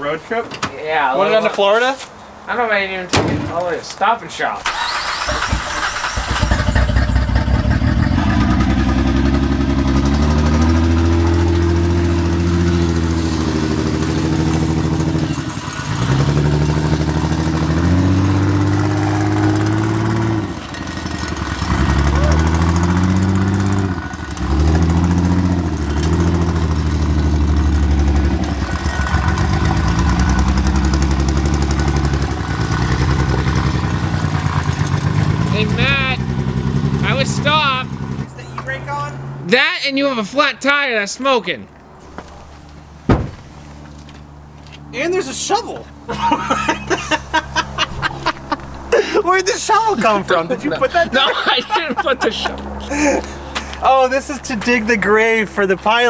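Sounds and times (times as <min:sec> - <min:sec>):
car engine under load: 0:04.6 - 0:39.4, 0:41.7 - 0:56.0.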